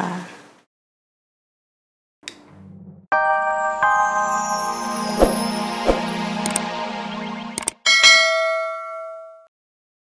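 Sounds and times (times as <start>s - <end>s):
bell chime ding: 3.2s - 6.6s, 7.8s - 9.5s.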